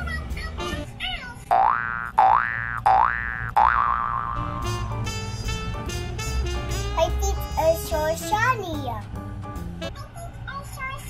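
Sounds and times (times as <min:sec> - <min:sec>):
wobbling warble: 0:01.5 - 0:04.9.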